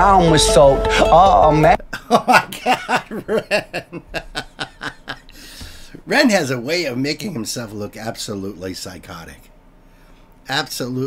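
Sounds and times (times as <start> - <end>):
man chuckling: 1.7 - 5.4
breathy hiss: 5.3 - 6.0.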